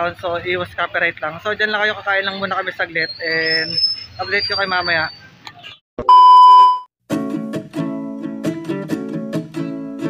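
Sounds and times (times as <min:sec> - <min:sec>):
electronic beep: 0:06.0 - 0:06.9.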